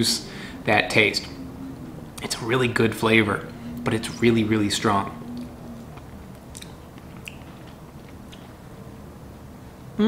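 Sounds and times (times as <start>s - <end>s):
person chewing softly: 5.2s - 8.7s
wet mouth clicks: 5.4s - 8.5s.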